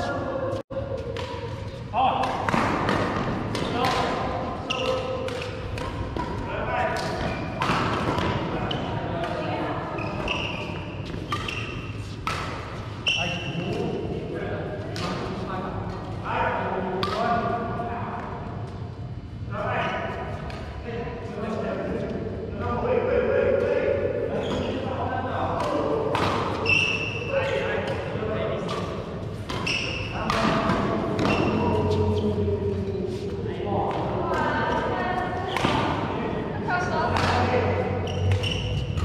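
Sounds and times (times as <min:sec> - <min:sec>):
racket hitting shuttlecock: 0:01.0 - 0:08.6, 0:10.2 - 0:13.0, 0:25.6 - 0:27.1, 0:27.8 - 0:32.0, 0:35.5 - 0:36.1, 0:38.1 - 0:39.0
shoe squeak on court floor: 0:04.7 - 0:05.1, 0:10.0 - 0:12.0, 0:13.0 - 0:13.7, 0:24.4 - 0:24.8, 0:26.6 - 0:27.6, 0:29.6 - 0:30.2, 0:31.2 - 0:32.3, 0:38.0 - 0:39.0.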